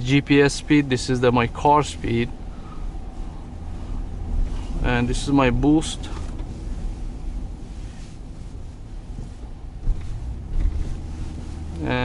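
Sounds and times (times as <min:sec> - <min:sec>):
engine and road noise in car: 0:00.0 - 0:12.0.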